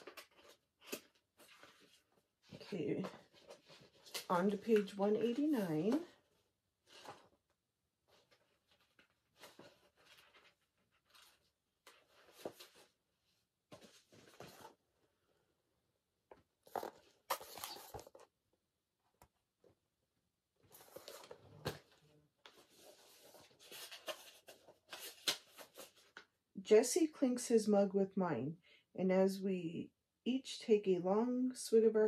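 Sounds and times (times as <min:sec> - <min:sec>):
book pages rustling: 0:00.0 - 0:14.9, 0:16.3 - 0:18.3, 0:20.6 - 0:26.3.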